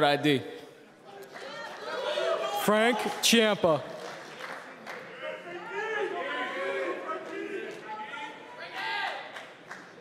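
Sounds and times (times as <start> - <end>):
audience chatter in a hall: 0.0 - 10.0.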